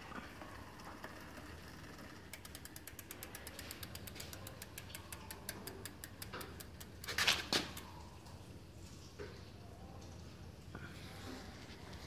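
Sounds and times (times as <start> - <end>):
bicycle freehub ratcheting clicks: 0.3 - 7.8.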